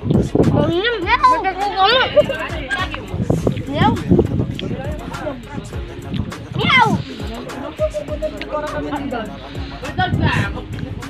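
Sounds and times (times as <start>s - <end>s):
background music: 0.0s - 11.0s
crowd voices: 0.0s - 11.0s.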